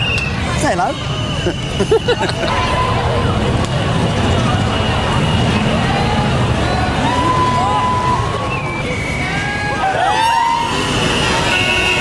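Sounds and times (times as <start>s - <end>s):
vehicle driving slowly: 0.0s - 10.1s
faint voices: 0.0s - 12.0s
road noise hiss: 0.0s - 12.0s.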